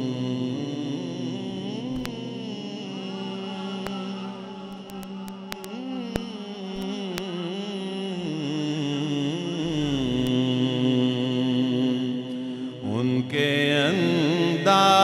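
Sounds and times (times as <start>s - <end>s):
man singing into a microphone: 0.0s - 15.0s.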